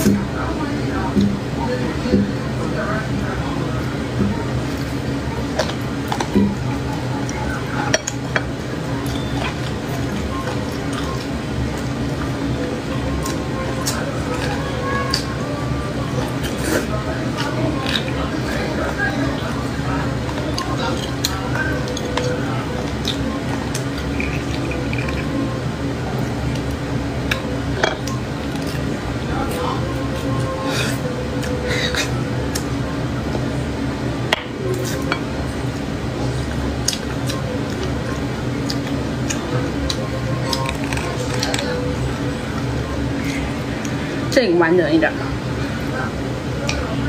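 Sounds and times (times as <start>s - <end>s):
sucking and chewing: 3.8s - 32.8s, 36.6s - 44.0s.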